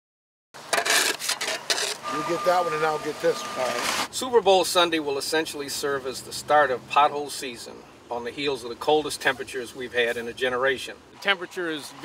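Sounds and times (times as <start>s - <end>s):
shovel scraping: 0.6s - 2.4s.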